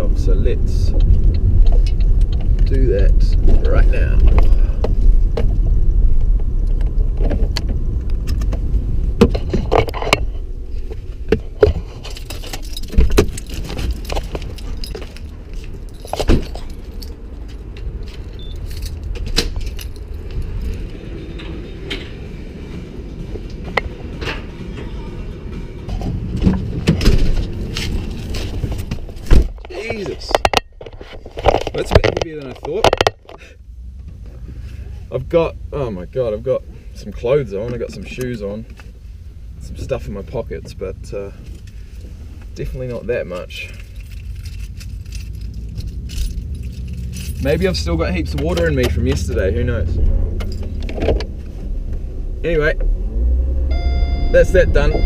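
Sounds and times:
car cabin engine and road rumble: 0.0 - 55.0
keys jangling: 12.0 - 21.0, 43.6 - 47.6
scattered clicks and knocks: 25.9 - 33.4.

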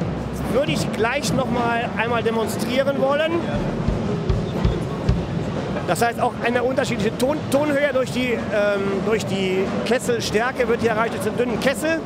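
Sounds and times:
deep drum hits: 3.5 - 5.5.

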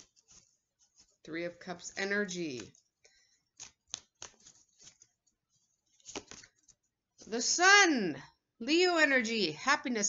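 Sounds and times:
cards clicking and rustling: 1.8 - 6.8.

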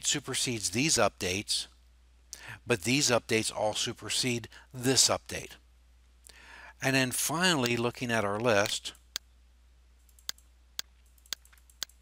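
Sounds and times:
faint low hum: 0.0 - 12.0
computer mouse clicks: 10.1 - 12.0.

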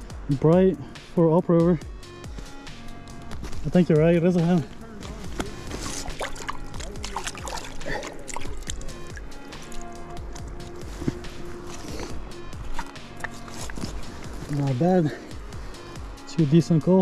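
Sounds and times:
background music with held notes: 0.0 - 17.0
clicks of boots on cobbles: 4.6 - 7.7, 8.4 - 14.6
boots sloshing in shallow water: 5.4 - 10.1.

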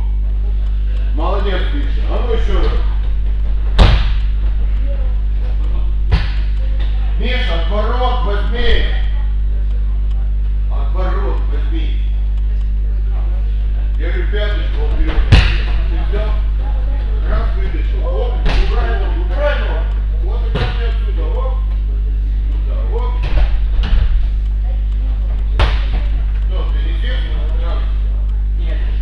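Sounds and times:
steady low hum: 0.0 - 29.0
bodies thudding on gym mats: 3.4 - 4.4, 6.0 - 6.5.

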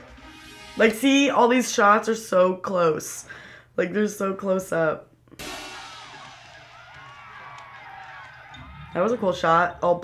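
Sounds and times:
dense wash of wavering tones: 5.4 - 7.7
music with cymbals and drums: 5.4 - 8.6.

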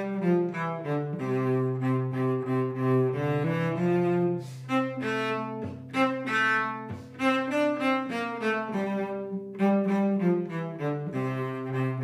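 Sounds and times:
cello folk melody: 0.0 - 12.0.

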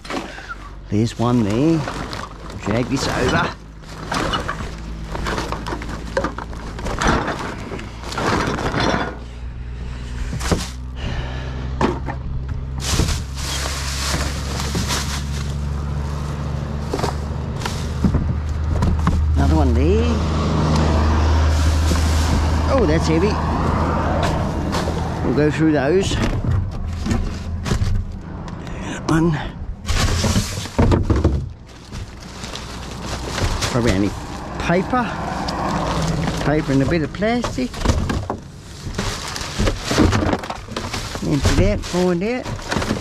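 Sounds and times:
plastic bags rustling: 0.0 - 9.2, 12.6 - 28.2, 29.7 - 43.0
bottles and boxes clattering: 0.0 - 9.3, 12.8 - 15.6, 29.9 - 43.0
vehicle engine humming: 0.0 - 43.0.

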